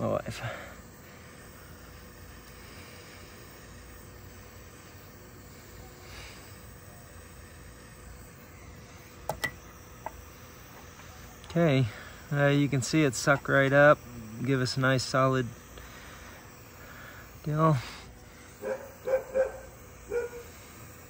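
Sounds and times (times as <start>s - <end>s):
heat gun hissing: 0.0s - 21.0s.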